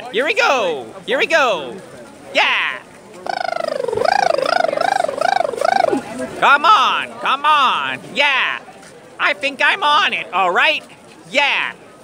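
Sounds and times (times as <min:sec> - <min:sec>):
person whooping in falsetto: 0:03.3 - 0:06.1.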